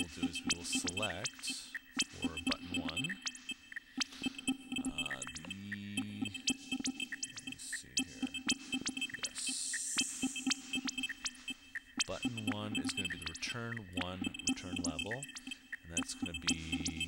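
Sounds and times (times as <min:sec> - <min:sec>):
glitchy electronic drum clicks: 0:00.0 - 0:17.0
steady low synth tone: 0:02.0 - 0:03.3, 0:12.0 - 0:17.0.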